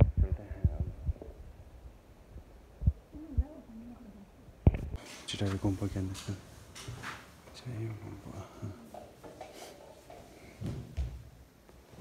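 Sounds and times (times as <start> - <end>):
phone microphone handling thumps: 4.6 - 5.0.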